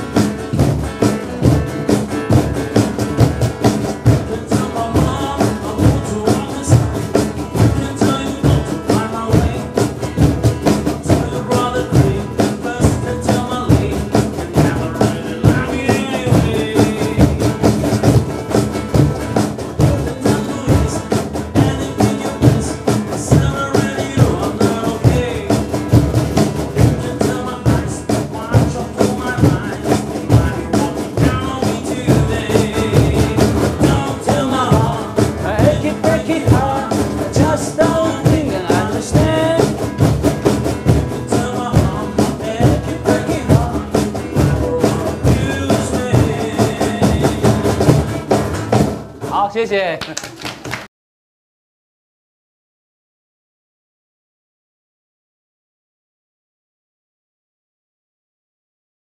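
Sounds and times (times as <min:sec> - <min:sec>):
acoustic guitar: 0:00.0 - 0:49.9
cajons drumming: 0:00.0 - 0:50.9.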